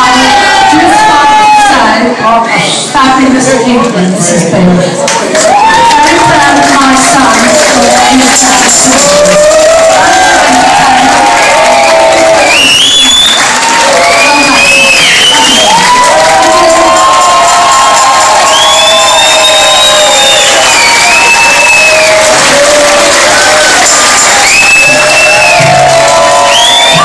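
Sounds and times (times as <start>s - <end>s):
audience cheering and whooping: 0.0s - 1.9s, 5.2s - 27.0s
high shouts: 0.0s - 2.1s, 5.4s - 27.0s.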